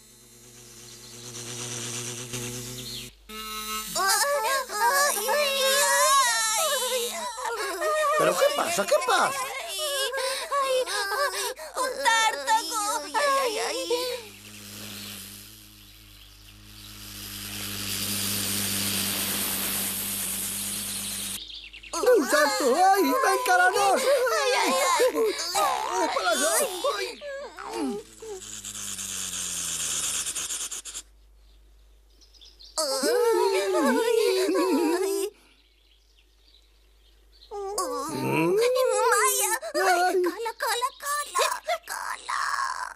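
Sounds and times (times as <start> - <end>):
cartoon bee buzzing: 0.0 - 31.0, 32.8 - 35.3, 37.5 - 42.9
hissing rush: 13.9 - 21.4
another voice: 38.0 - 38.8.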